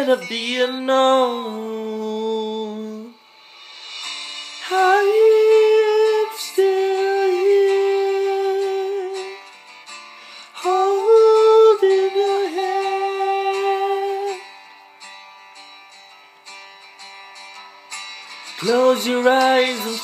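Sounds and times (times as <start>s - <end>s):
plucked guitar: 0.0s - 20.0s.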